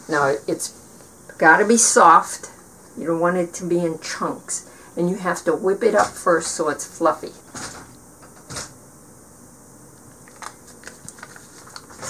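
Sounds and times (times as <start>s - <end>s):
wrapper crinkling: 10.2s - 12.0s.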